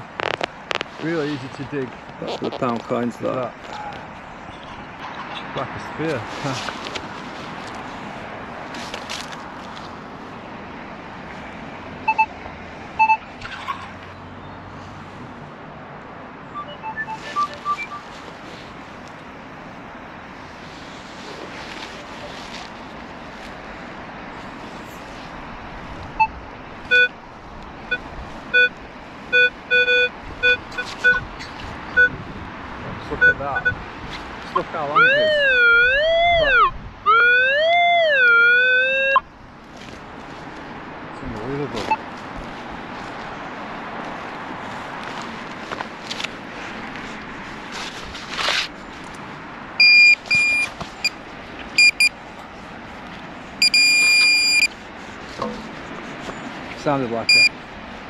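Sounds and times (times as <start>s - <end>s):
metal detector beeping: 12.1s - 12.3s, 13.0s - 13.3s, 16.5s - 18.2s, 26.2s - 27.1s, 27.9s - 31.2s, 32.0s - 32.2s, 33.2s - 33.8s, 49.8s - 51.2s, 51.8s - 52.1s, 53.6s - 54.7s, 57.2s - 57.5s
metal detector warbling tone: 16.6s - 18.1s, 49.8s - 50.7s, 51.8s - 52.1s, 53.6s - 54.7s, 57.3s - 57.5s
digging noise: 53.6s - 56.5s.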